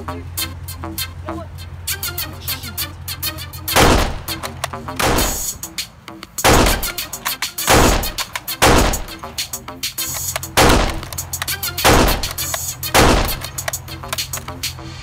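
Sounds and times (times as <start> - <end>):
electronic background music: 0.0 - 15.0
loud gunshots: 3.8 - 4.4, 5.0 - 5.6, 6.4 - 9.2, 10.6 - 11.2, 11.8 - 13.6.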